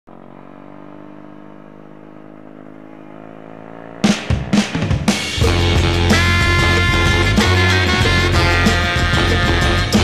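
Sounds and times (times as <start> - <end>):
small motorbike engine running: 0.1 - 10.0.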